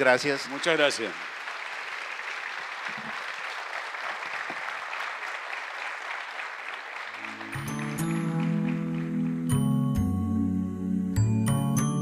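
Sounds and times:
audience applauding: 0:00.0 - 0:10.1.

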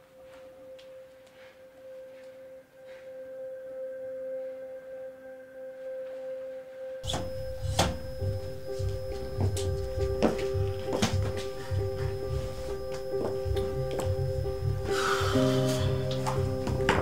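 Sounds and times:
dramatic film-score drone: 0:07.0 - 0:17.0
music with heavy bass beat: 0:07.0 - 0:17.0.

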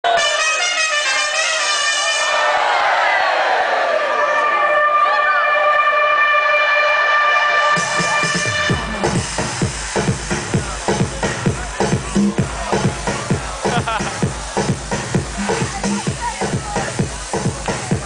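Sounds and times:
kick drum and bass: 0:07.8 - 0:18.0.

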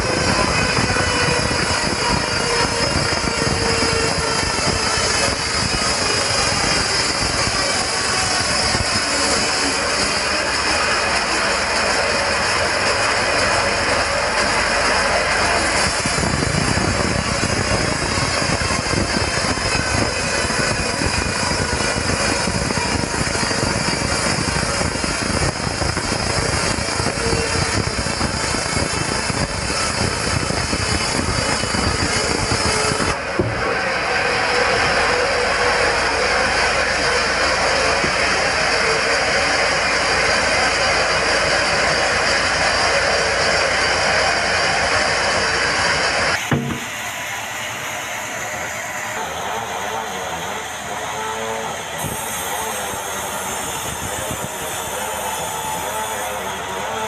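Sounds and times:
band sawmill cutting log: 0:00.0 - 0:57.0.

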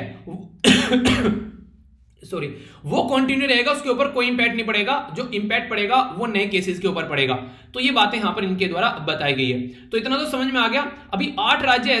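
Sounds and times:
man coughing: 0:00.6 - 0:01.6.

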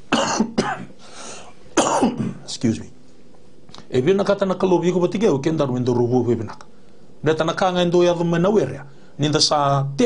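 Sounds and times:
man coughing into hand: 0:00.1 - 0:01.0, 0:01.8 - 0:02.5
short breath: 0:01.0 - 0:01.6.

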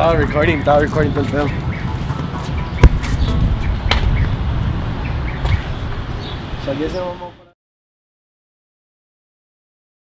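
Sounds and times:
sharp thump: 0:02.8 - 0:04.3.

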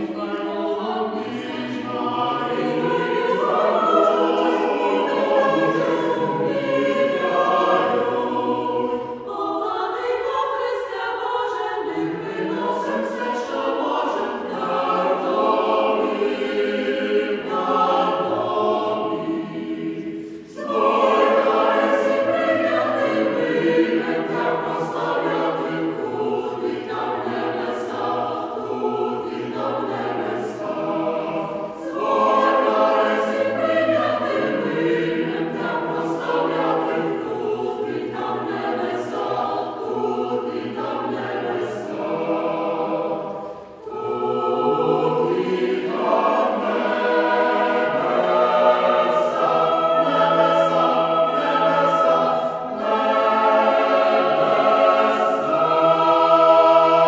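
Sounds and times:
choir singing in harmony: 0:00.0 - 0:57.0.

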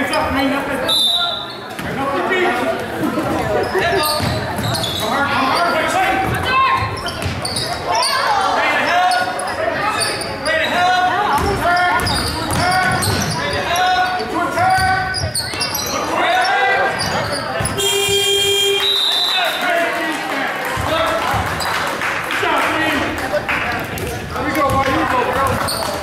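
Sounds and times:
players and spectators shouting: 0:03.6 - 0:21.7.

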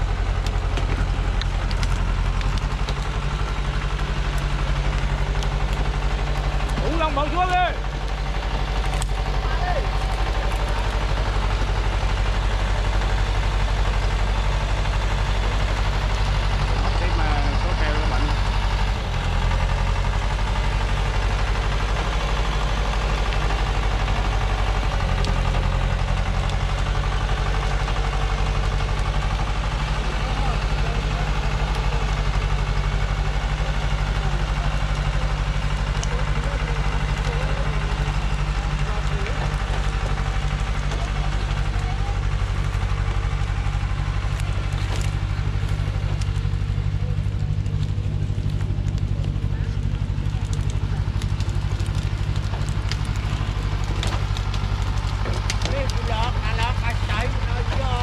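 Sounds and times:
truck diesel engine running: 0:00.0 - 0:58.0.

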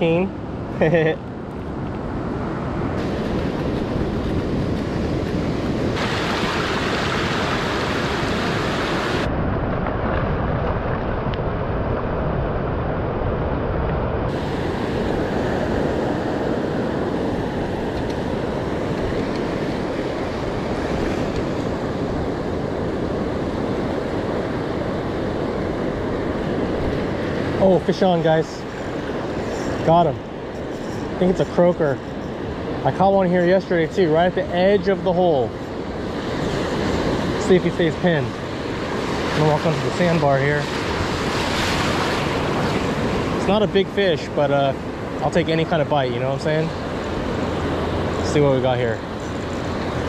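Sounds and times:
ocean surf rushing: 0:00.0 - 0:50.0
wind buffeting microphone: 0:00.0 - 0:50.0.

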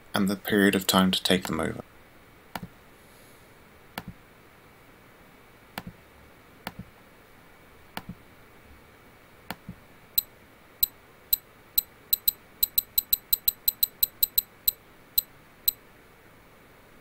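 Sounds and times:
quick double click: 0:12.1 - 0:14.5.

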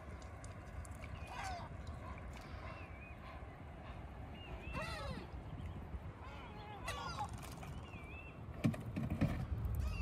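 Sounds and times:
gulls calling: 0:01.1 - 0:08.4, 0:09.8 - 0:10.0
wind rumble on microphone: 0:03.8 - 0:10.0.

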